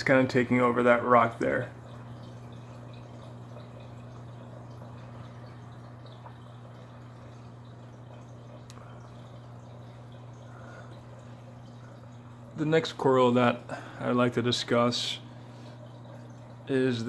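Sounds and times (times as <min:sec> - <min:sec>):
aquarium pumps humming: 0:00.0 - 0:17.0
water trickling and dripping: 0:00.0 - 0:17.0.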